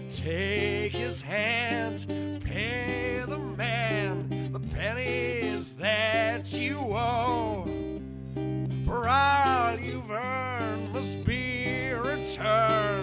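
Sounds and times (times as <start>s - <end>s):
acoustic guitar: 0.0s - 13.0s
low bass notes: 0.0s - 13.0s.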